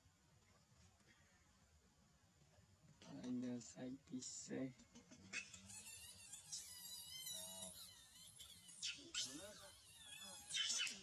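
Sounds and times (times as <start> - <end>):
monkey screaming: 5.3 - 11.0.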